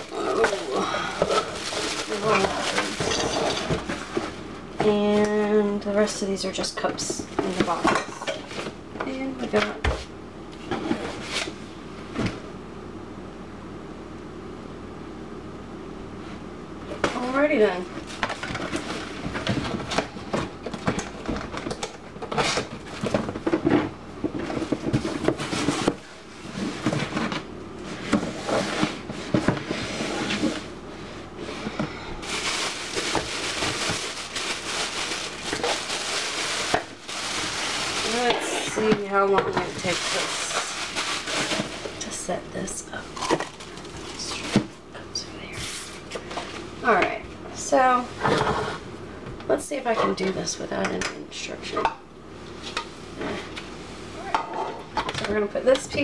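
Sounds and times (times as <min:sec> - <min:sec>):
plastic parts clattering: 0:00.0 - 0:03.9
plastic wrap crinkling: 0:00.0 - 0:04.4, 0:32.2 - 0:42.1.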